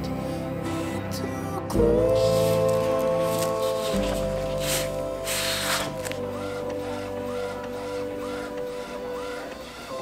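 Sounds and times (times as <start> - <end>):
background music: 0.0 - 10.0
printer mechanism printing: 2.1 - 10.0.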